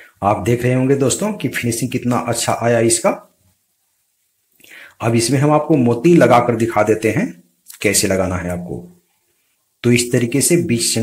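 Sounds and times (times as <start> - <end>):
man speaking: 0.2 - 3.3, 5.0 - 9.0, 9.8 - 11.0
faint breath: 4.6 - 5.0.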